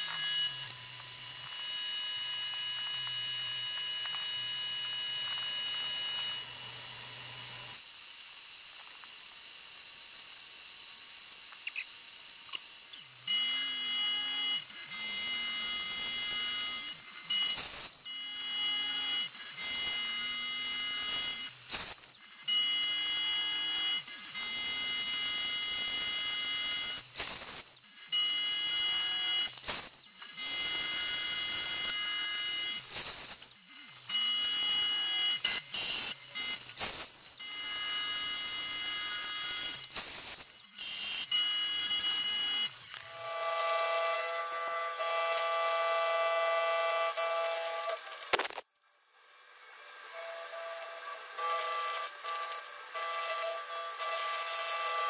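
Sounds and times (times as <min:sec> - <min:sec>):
milling machine cutting metal: 0:12.0 - 0:48.6, 0:49.8 - 0:55.0.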